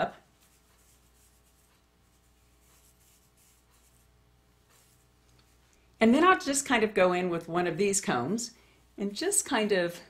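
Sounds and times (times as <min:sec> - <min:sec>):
fingers rustling hair: 0:00.0 - 0:05.9
low steady room hum: 0:00.0 - 0:10.0.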